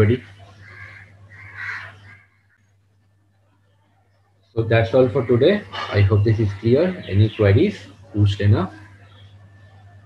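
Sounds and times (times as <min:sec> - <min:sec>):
faint bird calling: 0:00.0 - 0:03.4.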